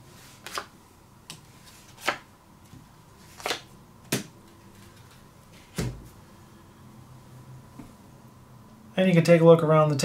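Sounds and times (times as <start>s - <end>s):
cards slapping onto table: 3.4s - 4.3s.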